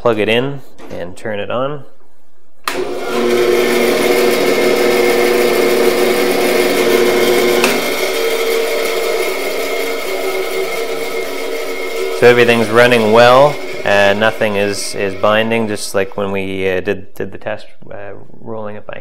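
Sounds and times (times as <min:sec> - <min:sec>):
band saw running: 0:02.7 - 0:16.4.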